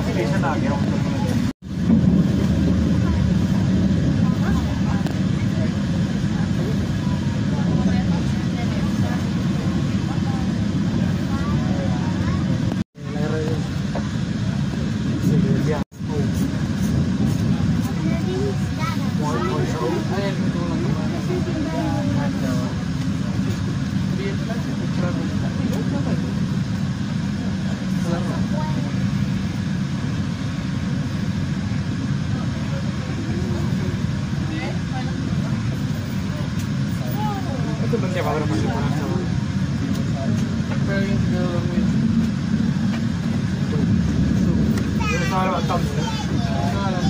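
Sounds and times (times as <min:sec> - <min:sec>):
voices talking: 0:00.0 - 0:01.6, 0:02.2 - 0:47.0
train rumbling on tracks: 0:00.0 - 0:47.0.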